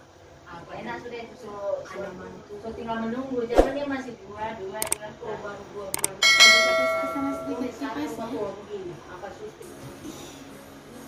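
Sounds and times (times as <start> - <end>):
quick clicks: 6.0 - 6.2
bell ding: 6.2 - 7.8.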